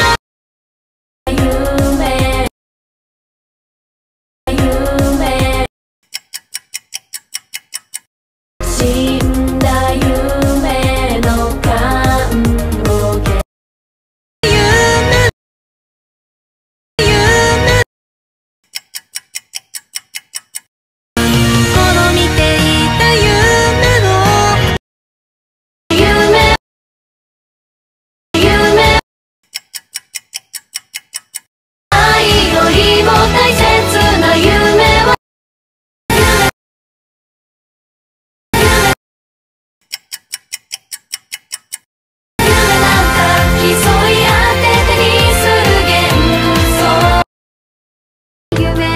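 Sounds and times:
music: 1.3 - 2.5, 4.5 - 5.7, 8.6 - 13.4, 14.4 - 15.3, 17.0 - 17.8, 21.2 - 24.8, 25.9 - 26.6, 28.4 - 29.0, 31.9 - 35.2, 36.1 - 36.5, 38.6 - 39.0, 42.4 - 47.3, 48.5 - 48.9
clock ticking: 6.0 - 8.1, 18.7 - 20.7, 29.4 - 33.7, 39.8 - 41.9
countdown timer ticking: 6.1 - 13.4, 18.7 - 22.7, 29.5 - 35.1, 39.8 - 47.2.

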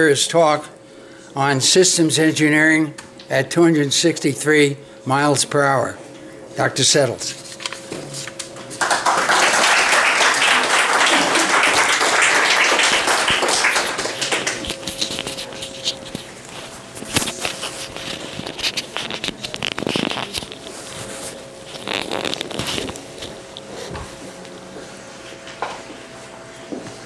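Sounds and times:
small audience applauding: 8.7 - 15.2.

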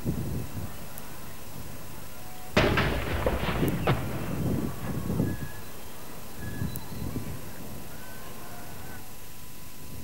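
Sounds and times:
field gun firing blank: 2.6 - 5.9.

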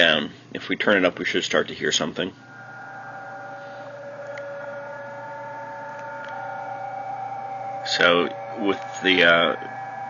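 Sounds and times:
steady radio data tones: 2.4 - 10.0.

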